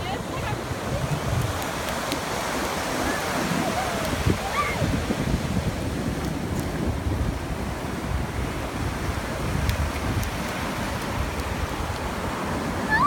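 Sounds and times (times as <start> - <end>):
ocean surf breaking: 0.0 - 13.0
wind buffeting microphone: 0.0 - 13.0.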